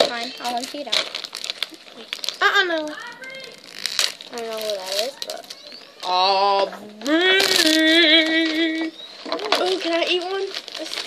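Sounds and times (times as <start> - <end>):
child's wordless vocal sound: 4.3 - 9.7.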